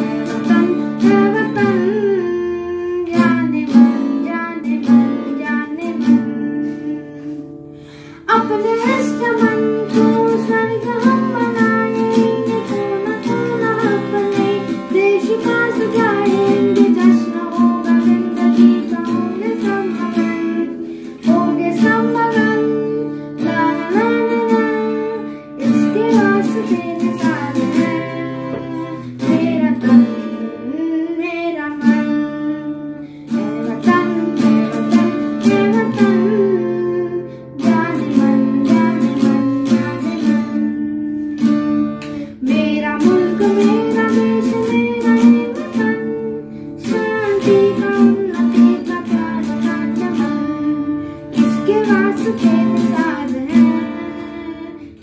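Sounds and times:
boy singing: 0.0s - 7.5s, 8.2s - 55.0s
acoustic guitar strumming: 0.0s - 55.0s.

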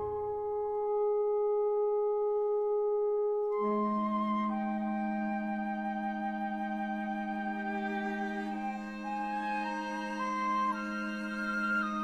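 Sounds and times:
held flute note: 0.0s - 1.6s, 3.4s - 12.0s.

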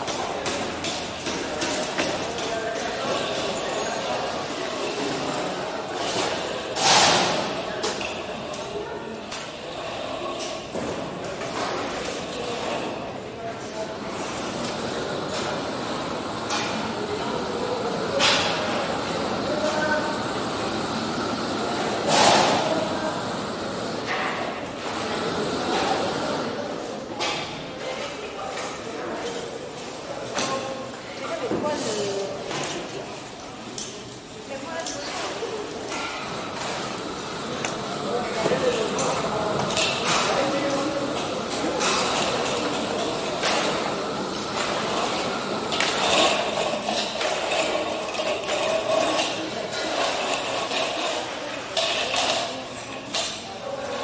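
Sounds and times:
construction site din in a hall: 0.0s - 54.0s.

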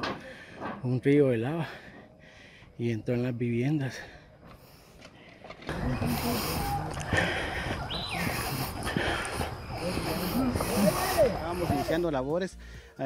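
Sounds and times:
overlapping voices: 5.7s - 12.1s.

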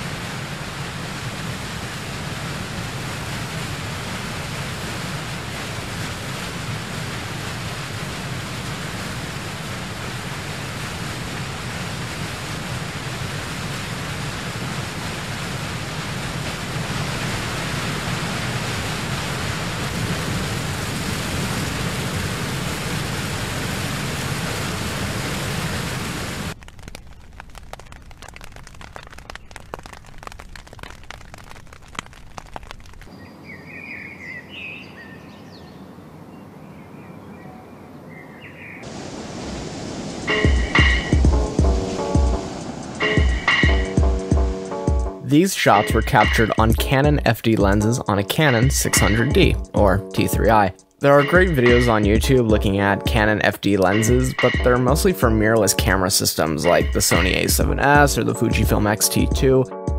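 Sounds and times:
waterfall rushing: 0.0s - 26.6s, 38.8s - 59.3s.

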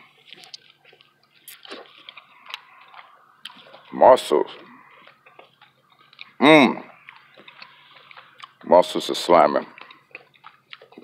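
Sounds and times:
wet squishy eating sounds: 0.0s - 11.0s.

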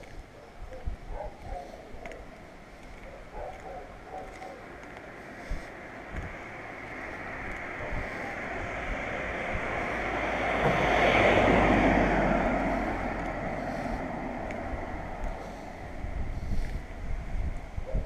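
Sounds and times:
car passing: 2.5s - 17.4s.

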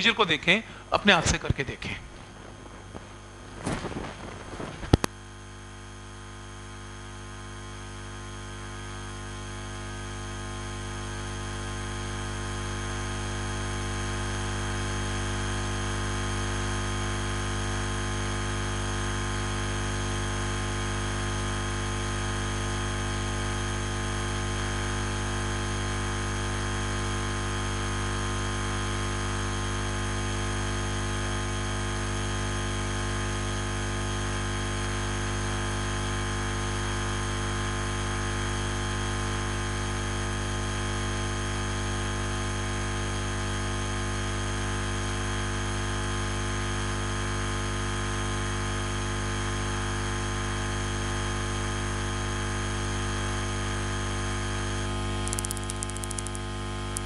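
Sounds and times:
loud electrical hum: 0.0s - 57.0s
steady hiss: 0.1s - 5.1s.

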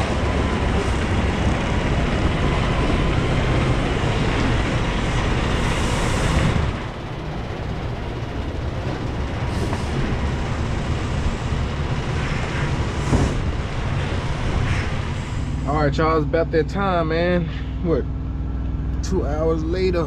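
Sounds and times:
diesel truck engine rumbling: 0.0s - 20.0s.

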